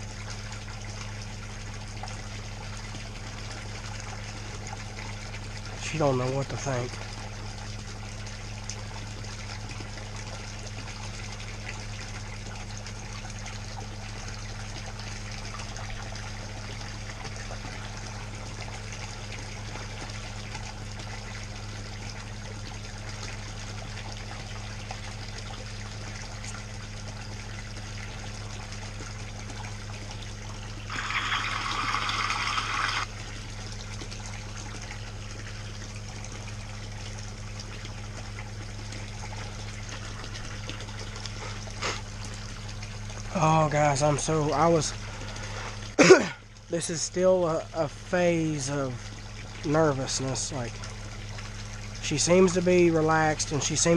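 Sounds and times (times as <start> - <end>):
low hum: 0.0 - 53.9
water pouring into pond: 0.0 - 53.9.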